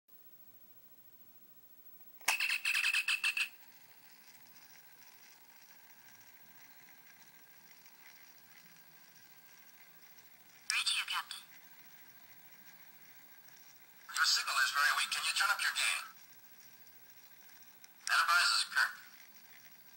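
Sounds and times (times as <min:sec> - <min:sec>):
faint electronic hiss: 0:00.1 - 0:19.9.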